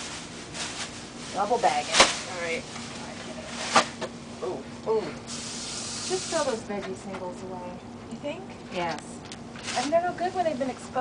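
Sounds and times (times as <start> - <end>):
steady low hum: 0.0 - 11.0
voices: 6.0 - 11.0.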